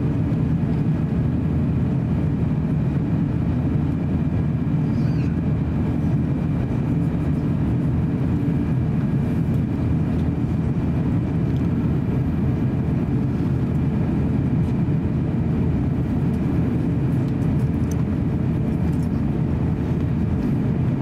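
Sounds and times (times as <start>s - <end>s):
airliner cabin rumble: 0.0s - 21.0s.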